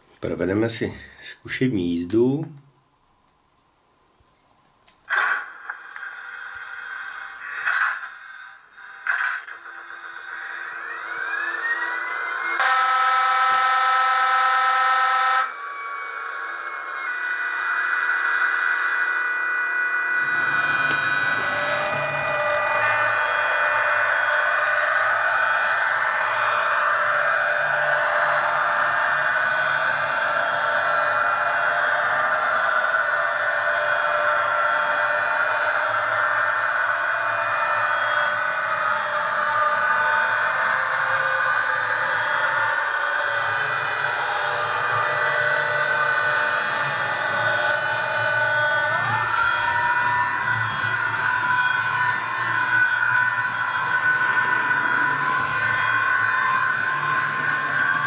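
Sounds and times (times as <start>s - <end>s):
electric drive hum and whine: 0.0s - 58.0s
rising electric whine: 4.4s - 58.0s
locomotive horn blast: 12.6s - 15.6s.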